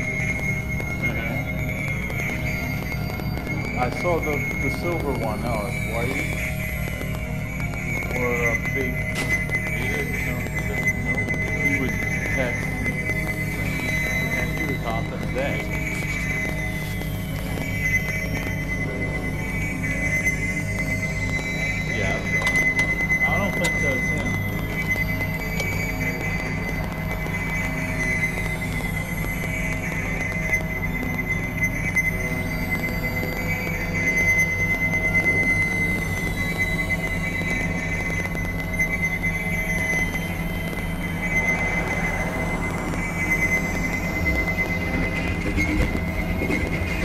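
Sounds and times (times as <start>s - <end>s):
pulsing low drone: 0.0s - 47.0s
steady high synth tone: 0.0s - 47.0s
falling high-pitched glides: 39.1s - 47.0s.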